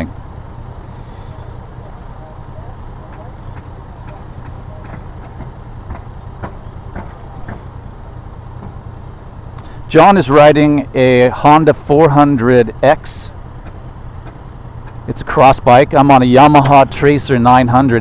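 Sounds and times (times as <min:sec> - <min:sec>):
motorcycle engine idling: 0:00.6 - 0:09.9.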